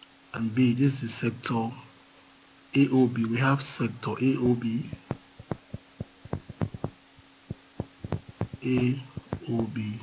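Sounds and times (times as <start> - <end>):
faint steady hum: 0.0 - 10.0
stylus tapping on drawing tablet: 4.4 - 9.7.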